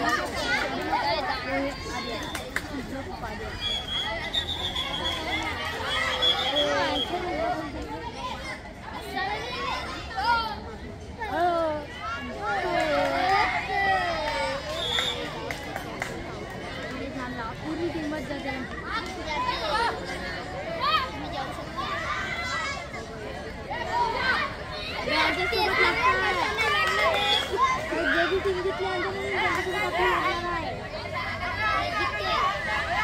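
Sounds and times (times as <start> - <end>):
children shouting and cheering: 0.0 - 17.2, 18.7 - 33.0
young voices shouting: 18.8 - 33.0.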